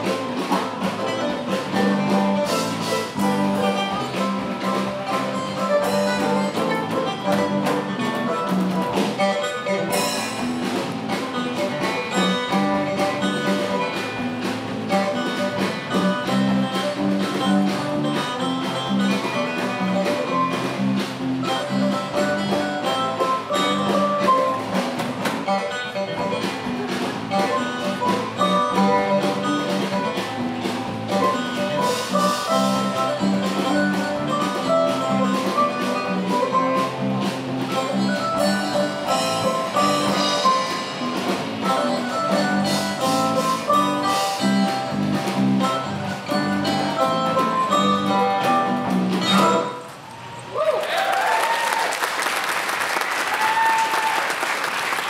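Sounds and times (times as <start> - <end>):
acoustic guitars strumming: 0.0 - 50.0
drum kit beat: 0.0 - 50.0
fiddle band playing: 0.0 - 50.0.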